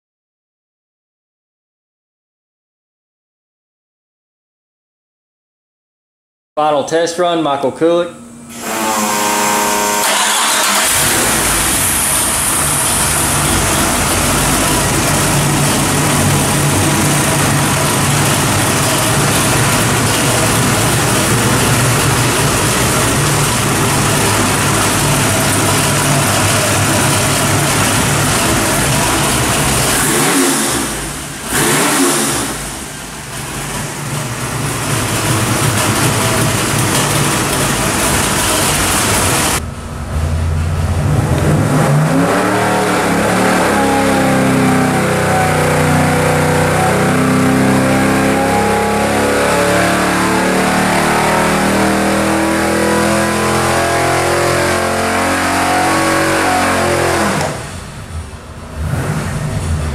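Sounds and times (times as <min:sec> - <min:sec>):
car engine revving on dyno: 0:08.4 - 0:59.9.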